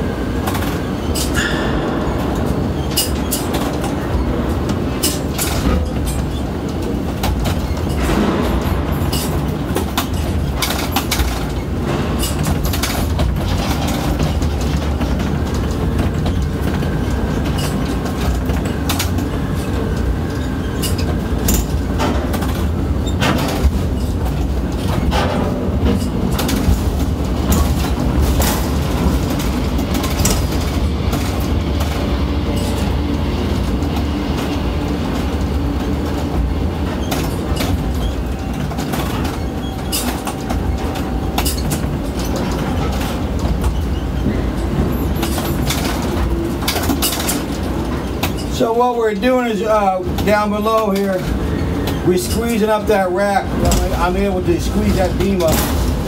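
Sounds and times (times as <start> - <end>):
crane drives rumbling: 0.0 - 56.0
metal clicks and clanks: 0.4 - 36.3, 36.9 - 48.6.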